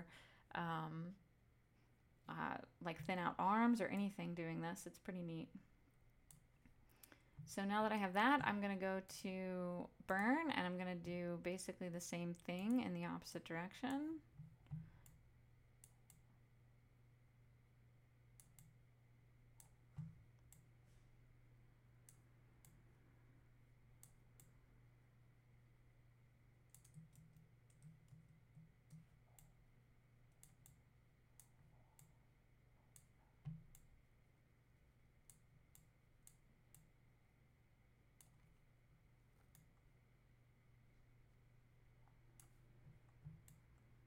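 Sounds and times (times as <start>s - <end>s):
low steady hum: 0.0s - 44.0s
computer mouse clicks: 6.2s - 7.5s, 14.4s - 15.2s, 15.8s - 16.3s, 18.4s - 18.8s, 19.6s - 20.7s, 22.0s - 22.8s, 24.0s - 24.6s, 26.7s - 29.6s, 30.3s - 34.0s, 35.2s - 36.9s, 38.2s - 38.6s, 39.3s - 39.9s, 42.0s - 43.8s.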